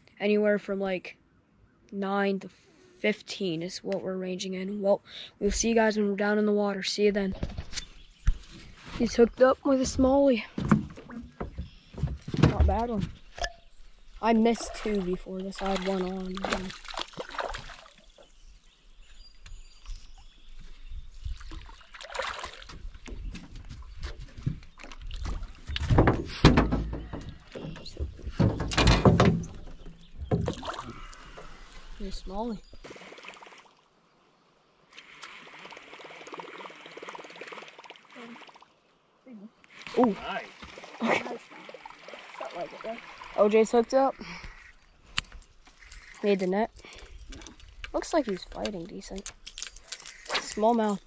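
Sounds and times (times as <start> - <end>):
fish splashing in water: 14.6 - 18.3, 21.4 - 23.0, 32.8 - 33.8, 35.0 - 38.7, 39.8 - 43.5.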